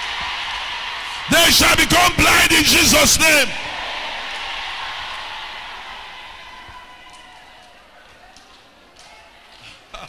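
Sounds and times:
congregation noise in echoing hall: 0.0 - 10.0.

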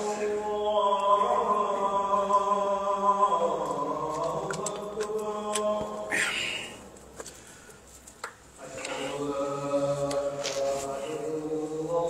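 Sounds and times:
man chanting over loudspeaker: 0.0 - 6.2, 8.6 - 12.0.

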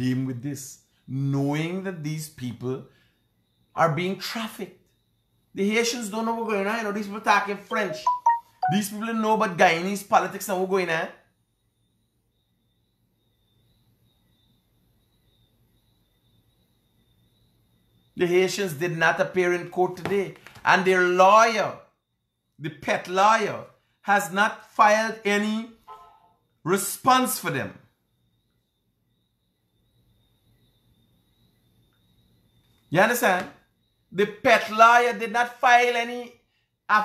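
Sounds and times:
man's voice: 7.3 - 9.6
faint high-pitched tone: 7.6 - 9.2, 25.8 - 26.4.

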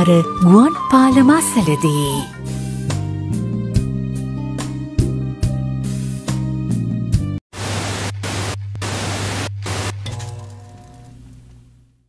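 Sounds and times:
television static hiss: 7.6 - 9.9.

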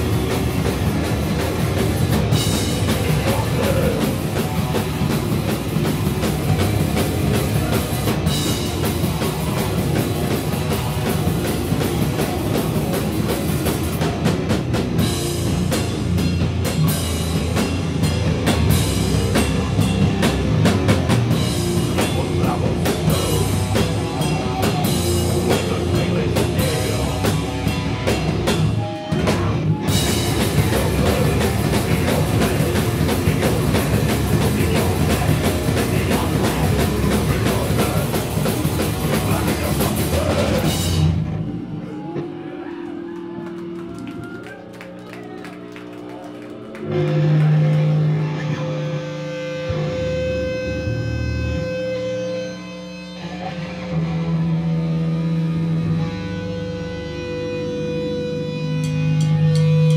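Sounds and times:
pounding drum kit: 0.0 - 42.6, 58.5 - 59.9
loud live band playing: 0.0 - 59.9.

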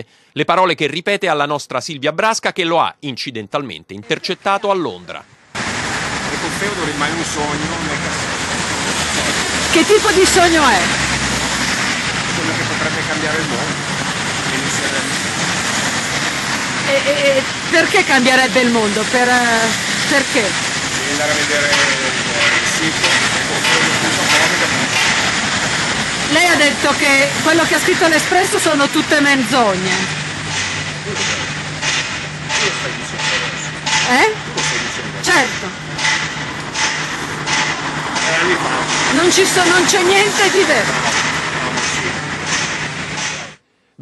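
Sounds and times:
loud street traffic: 4.1 - 43.6.

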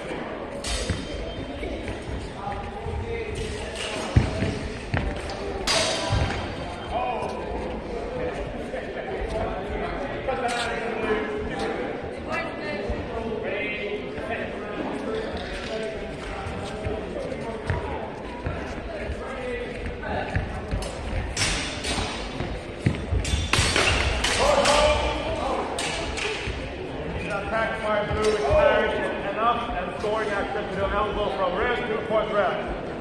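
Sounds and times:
swords clacking together: 23.2 - 25.0
voices and shouts: 24.2 - 32.7.

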